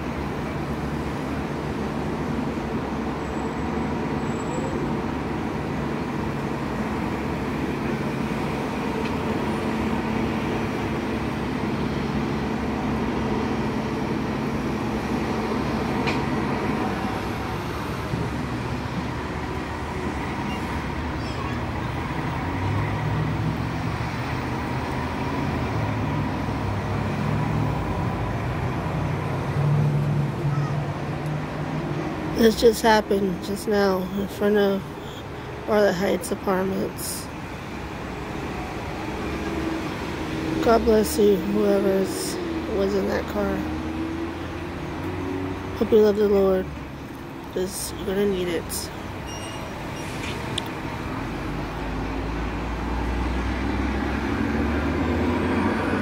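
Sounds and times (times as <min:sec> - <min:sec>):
heavy engine drone: 0:00.0 - 0:56.0
street traffic: 0:00.0 - 0:56.0
vehicle engines idling: 0:00.0 - 0:56.0.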